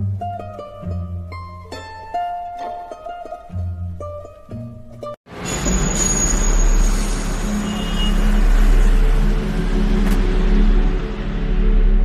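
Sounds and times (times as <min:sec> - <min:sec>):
road traffic rumble: 0:05.3 - 0:12.0.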